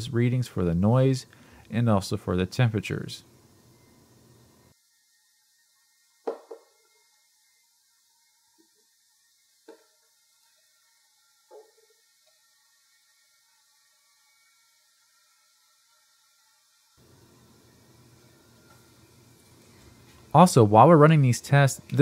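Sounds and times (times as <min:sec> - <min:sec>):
faint hiss: 0:06.1 - 0:22.0
faint knocks on desk: 0:06.2 - 0:06.7.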